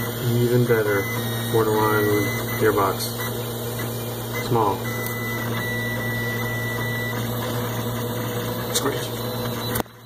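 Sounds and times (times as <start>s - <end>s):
thin high whine: 0.0s - 9.8s
printer mechanical hum: 0.0s - 10.0s.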